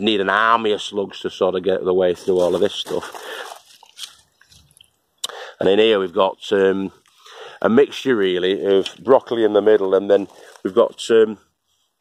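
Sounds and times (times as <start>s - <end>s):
leaves rustling: 2.1s - 5.0s, 7.9s - 11.8s.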